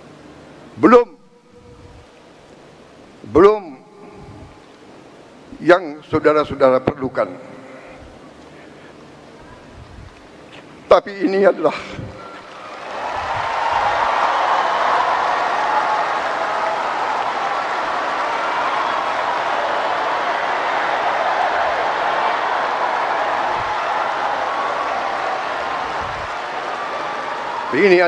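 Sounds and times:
crowd applauding: 0:12.2 - 0:28.0.

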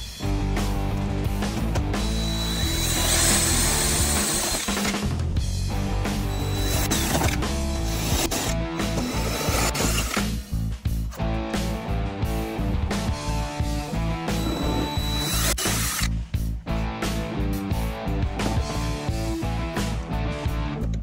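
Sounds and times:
cordless drill against metal panel: 0:02.0 - 0:05.0, 0:06.2 - 0:10.2, 0:14.3 - 0:16.1.

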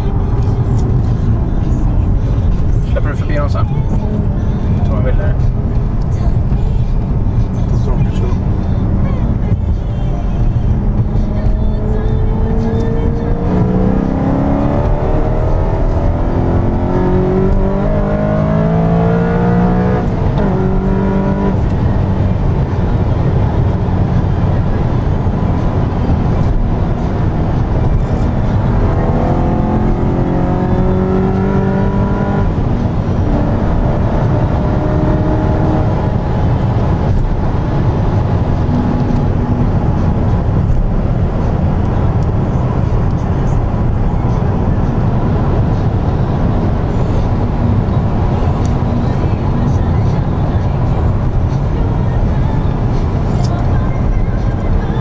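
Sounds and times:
car engine accelerating: 0:00.0 - 0:55.0
road and wind noise: 0:00.0 - 0:55.0.

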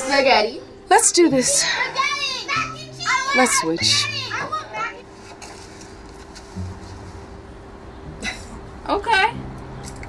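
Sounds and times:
child calling out: 0:01.5 - 0:05.0
soft low note: 0:06.6 - 0:08.3.

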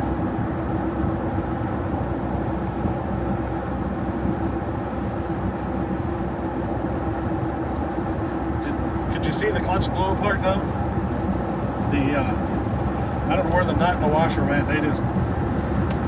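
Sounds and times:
engine and road noise in cab: 0:00.0 - 0:16.0.

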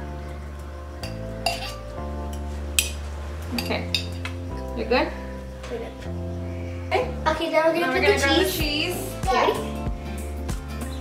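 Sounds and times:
background music: 0:00.0 - 0:11.0
metal spoon clinking on glass jar: 0:01.0 - 0:01.8.

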